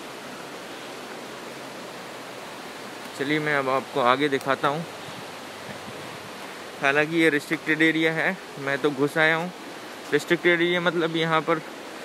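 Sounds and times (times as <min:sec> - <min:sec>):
river rushing over rapids: 0:00.0 - 0:12.0.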